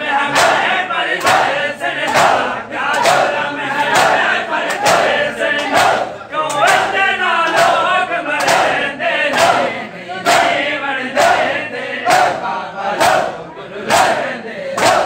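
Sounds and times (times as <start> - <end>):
men chanting together: 0.0 - 15.0
hands slapping chests: 1.2 - 9.6, 14.8 - 15.0.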